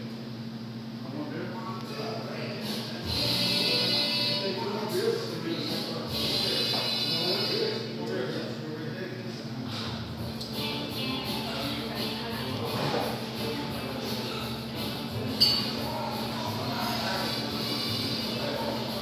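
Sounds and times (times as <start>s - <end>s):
steady low hum: 0.0s - 19.0s
indistinct crowd chatter: 2.3s - 19.0s
background music: 10.2s - 19.0s.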